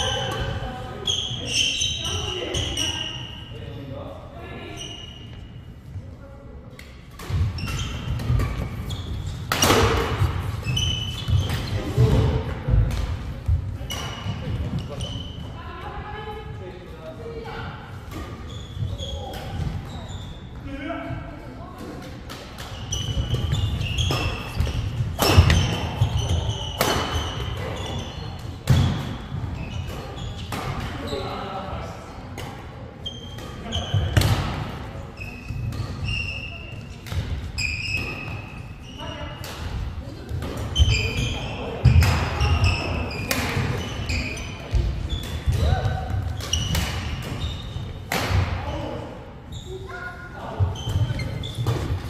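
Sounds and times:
shoe squeaks: 1.0 - 3.6, 4.6 - 5.8, 7.4 - 9.5, 10.4 - 12.2, 13.8 - 15.6, 18.2 - 20.6, 22.6 - 31.6, 33.0 - 34.2, 35.0 - 39.4, 40.7 - 48.1, 49.4 - 52.0.

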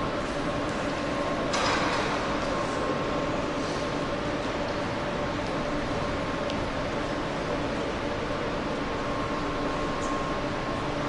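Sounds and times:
train mechanical hum: 0.0 - 11.0.

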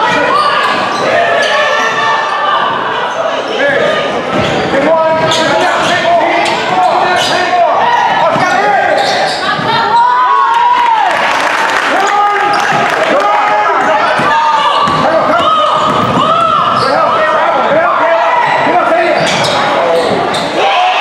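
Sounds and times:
sneakers squeaking on floor: 0.0 - 7.6, 8.2 - 10.3, 14.2 - 17.8, 18.5 - 20.6
voices in hall: 0.0 - 21.0
basketball dribbling: 14.2 - 16.8.

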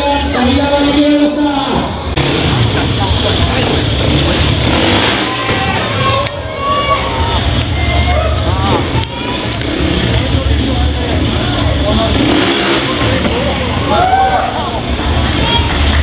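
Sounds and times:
loudspeaker talk: 0.0 - 16.0
motorcycle engine at low revs: 2.1 - 6.2, 7.4 - 14.0.

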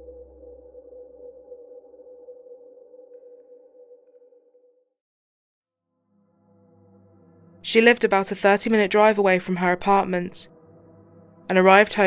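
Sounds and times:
bass hum: 0.0 - 2.3
ambient drone music: 0.0 - 4.7, 6.0 - 9.0, 10.4 - 12.0.

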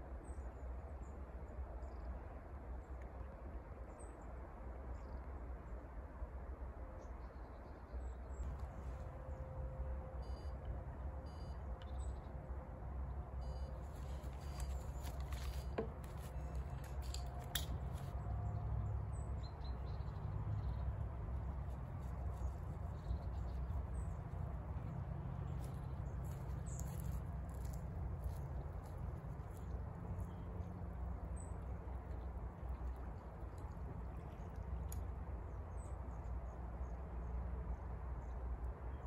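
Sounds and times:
steady low rumble: 8.3 - 38.7
faint bird chirps: 9.3 - 12.3, 13.4 - 15.6
small clicks and knocks: 14.0 - 18.1.

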